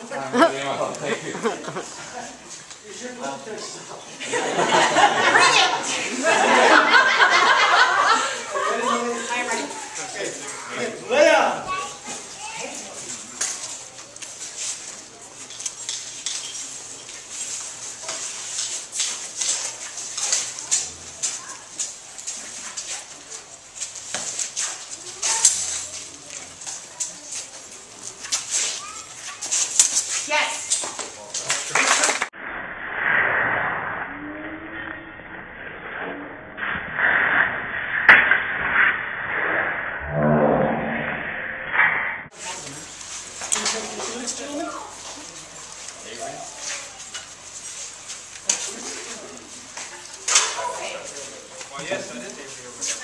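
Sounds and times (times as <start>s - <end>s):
spectators talking: 0.0s - 32.3s, 42.3s - 53.0s
fencing blades clicking and scraping: 13.1s - 31.7s, 42.7s - 53.0s.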